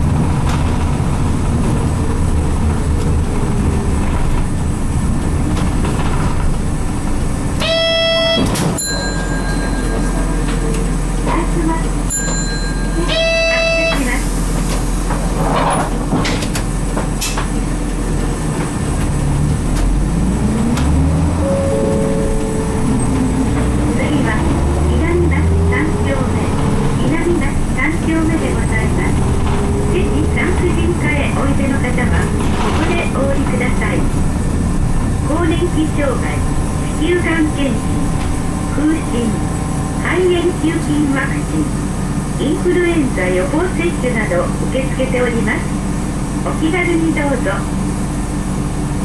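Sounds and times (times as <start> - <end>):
bus diesel engine pulling away: 0.0 - 46.5
brief electronic tone: 21.4 - 23.4.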